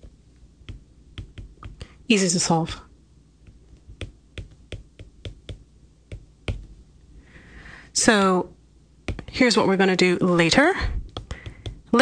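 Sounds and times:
stylus tapping on tablet screen: 0.0 - 1.9, 3.4 - 6.8, 9.0 - 9.4, 11.1 - 12.0.

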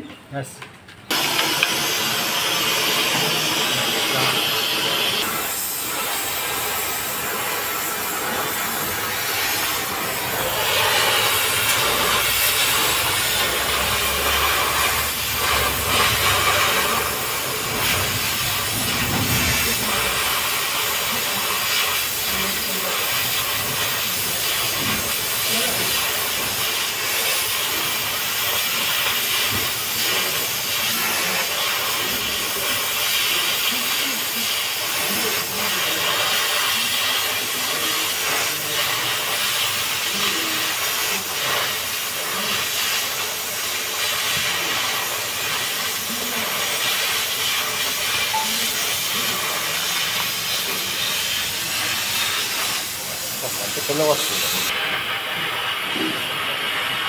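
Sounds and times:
cutting torch hissing: 1.1 - 57.0.

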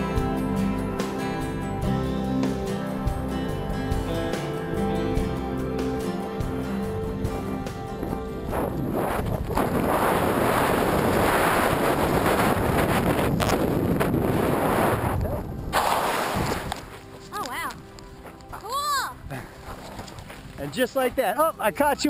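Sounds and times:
music: 0.0 - 15.8, 16.4 - 22.0
wind rushing over microphone: 7.2 - 17.0.

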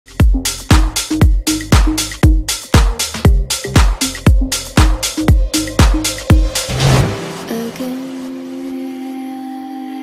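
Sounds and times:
electronic dance music: 0.1 - 8.3.

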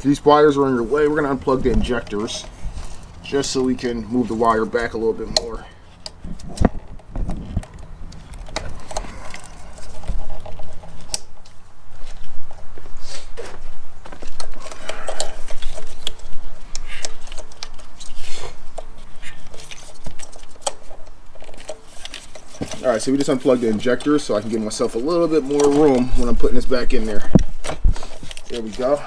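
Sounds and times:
wires rattling: 0.0 - 12.8, 13.6 - 29.0
plastic connectors clicking and snapping: 5.3 - 11.6.

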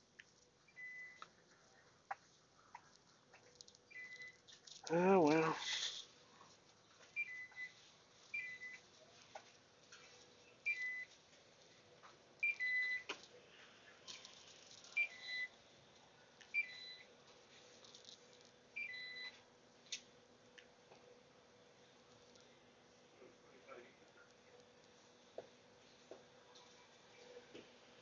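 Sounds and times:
electronic checkout beeps: 3.9 - 4.4, 10.7 - 11.1, 15.0 - 15.5.

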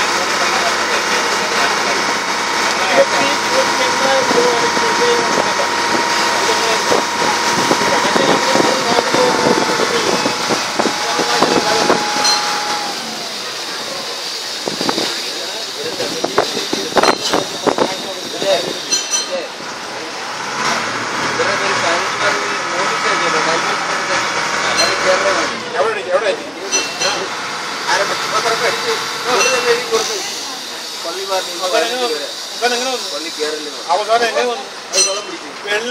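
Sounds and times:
indistinct voices: 0.0 - 25.8
boat engine running: 0.0 - 33.0.

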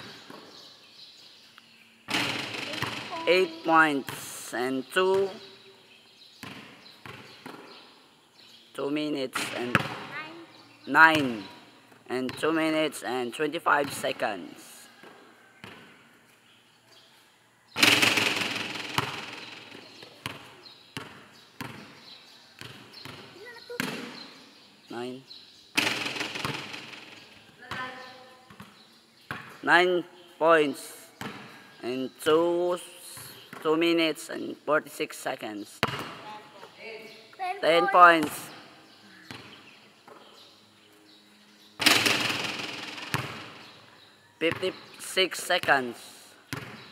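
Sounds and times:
basketball bouncing on concrete: 2.1 - 4.2, 6.4 - 7.8, 9.4 - 10.2, 15.0 - 16.0, 17.8 - 24.2, 25.8 - 29.6, 35.8 - 36.4, 39.3 - 40.2, 41.8 - 43.7, 46.5 - 46.9.

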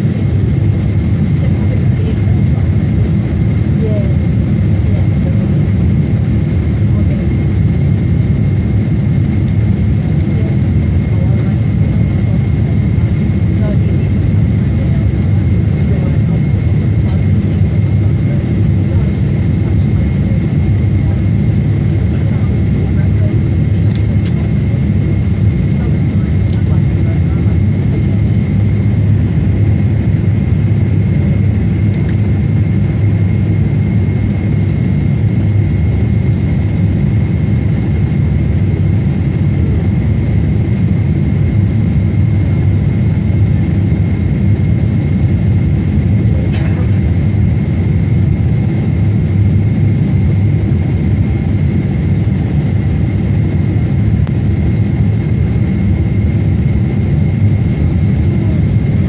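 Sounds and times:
jet engine and airflow rumble: 0.0 - 59.0.

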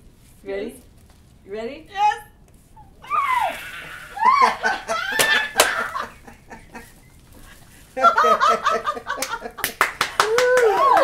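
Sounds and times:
high sliding squeal: 3.0 - 5.6
women laughing loudly: 4.0 - 7.0, 8.0 - 11.0
hand claps: 5.1 - 5.9, 9.1 - 11.0.

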